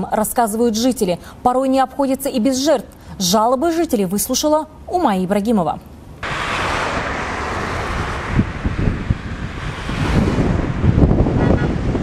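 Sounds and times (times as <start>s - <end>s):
road traffic passing: 6.0s - 12.0s
wind buffeting microphone: 6.2s - 12.0s.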